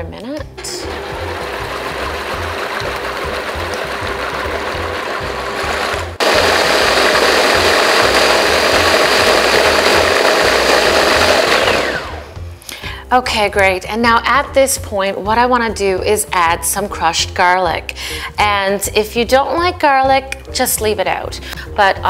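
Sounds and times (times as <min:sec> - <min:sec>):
blender motor running: 0:00.6 - 0:12.4.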